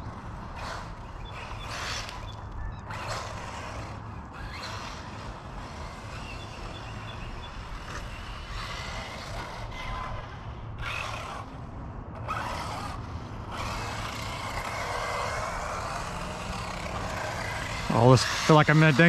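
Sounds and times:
electric motor whine: 0.0s - 19.0s
outdoor rumble and hiss: 0.0s - 19.0s.

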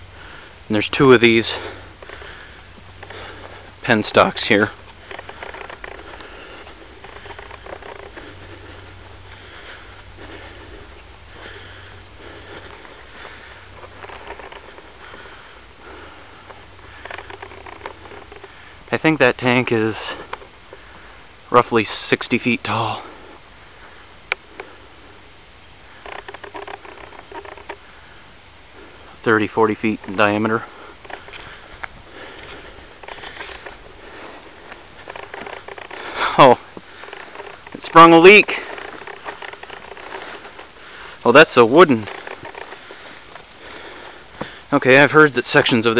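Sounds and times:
soft footsteps through weeds: 0.0s - 19.2s, 28.6s - 45.9s
rustling of weeds and brush: 0.0s - 45.9s
faint clicks: 4.6s - 10.5s, 11.4s - 18.7s, 25.9s - 28.0s, 29.9s - 41.2s.

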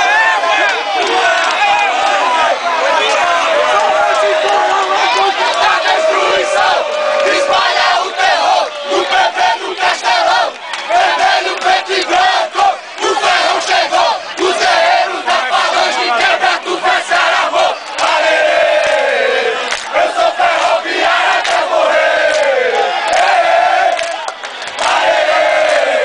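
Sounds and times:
crowd shouting and cheering: 0.0s - 26.0s.

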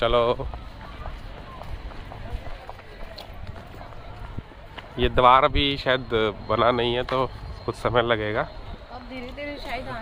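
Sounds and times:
footsteps on stone paving: 0.0s - 5.6s, 8.9s - 10.0s
faint distant voices: 0.0s - 10.0s.

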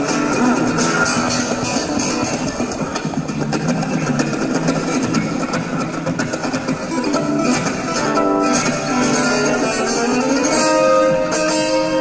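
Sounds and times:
electro-acoustic guitar playing: 0.0s - 12.0s.

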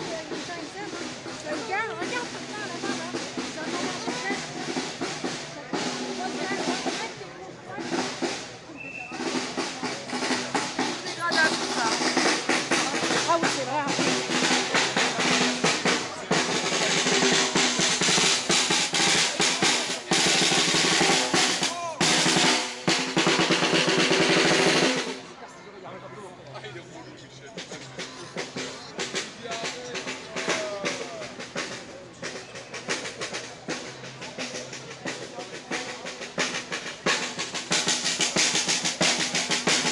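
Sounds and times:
snare drum rolls: 0.0s - 25.3s, 27.6s - 39.9s
people talking: 0.0s - 39.9s.

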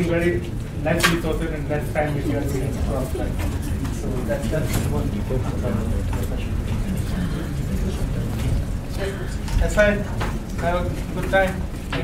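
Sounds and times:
faint voices murmuring: 0.0s - 12.0s
low room rumble: 0.0s - 12.0s.

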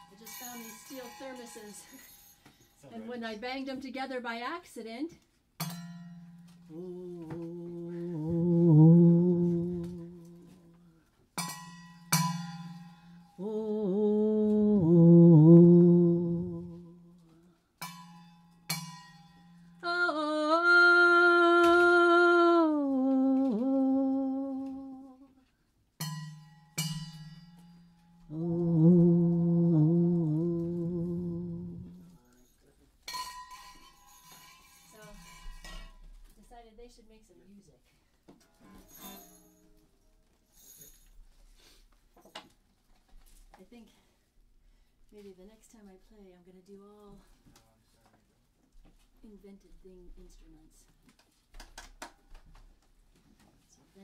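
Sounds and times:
wavering humming tones: 6.7s - 10.6s, 13.4s - 17.0s, 28.3s - 32.1s.

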